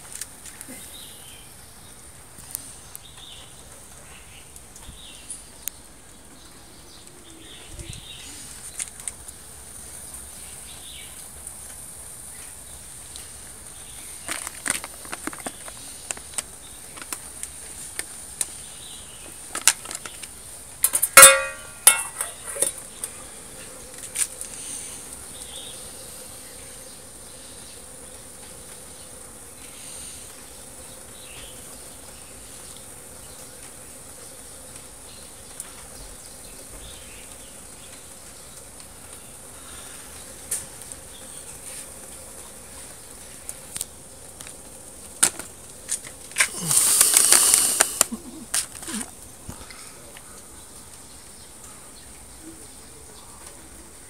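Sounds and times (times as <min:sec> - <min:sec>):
crackles and pops: 0:02.3 - 0:07.2, 0:08.6 - 0:10.2, 0:11.0 - 0:25.7, 0:32.2 - 0:51.4
stove flame burning: 0:07.9 - 0:51.3.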